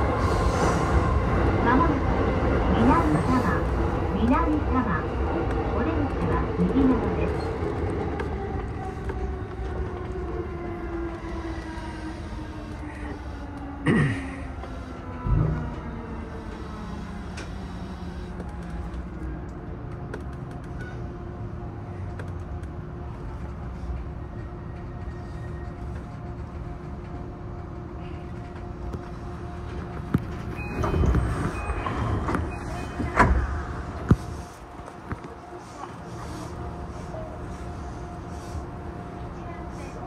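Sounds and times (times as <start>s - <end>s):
electric train running hum: 0.0s - 40.0s.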